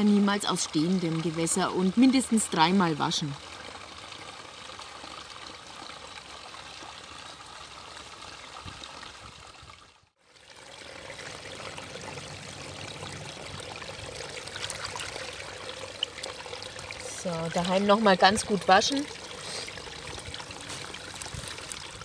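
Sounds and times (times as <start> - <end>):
stream trickling over stones: 0.0 - 22.0.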